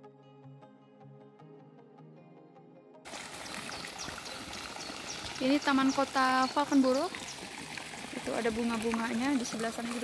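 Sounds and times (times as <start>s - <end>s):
fountain water splashing: 3.1s - 10.0s.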